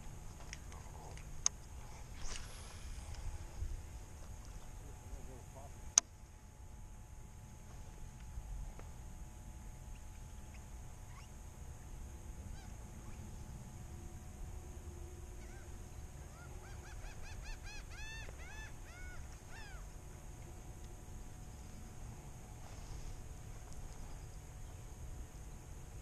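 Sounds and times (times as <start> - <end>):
low steady rumble: 0.0 - 26.0.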